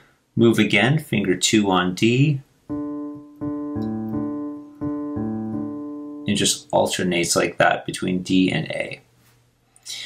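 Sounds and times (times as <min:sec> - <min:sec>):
low piano notes: 0:02.7 - 0:07.3.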